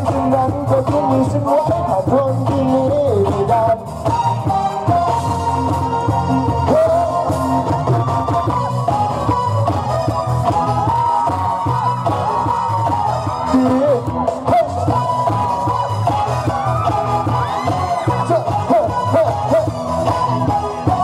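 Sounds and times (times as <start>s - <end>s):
loud live band music: 0.0s - 21.0s.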